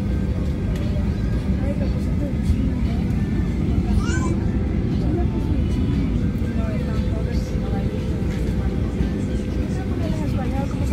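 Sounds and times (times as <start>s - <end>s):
aircraft cabin rumble: 0.0s - 10.9s
constant hum: 0.0s - 10.9s
faint passenger voices murmuring: 0.0s - 10.9s.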